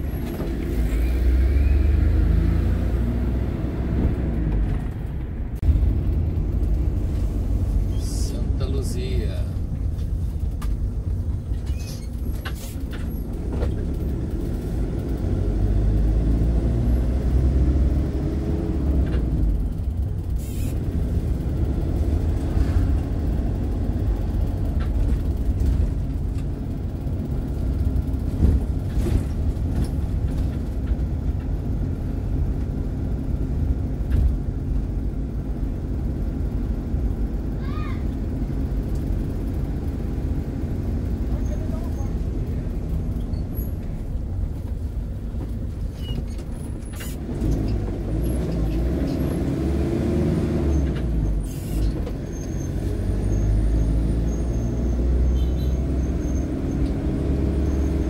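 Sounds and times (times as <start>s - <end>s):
motorhome engine and road noise: 0.0s - 58.0s.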